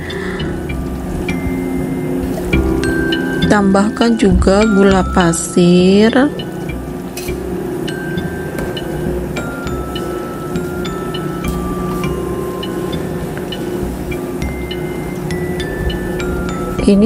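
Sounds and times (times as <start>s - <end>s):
slow melody of held notes: 0.0s - 17.0s
steady low hum: 0.0s - 17.0s.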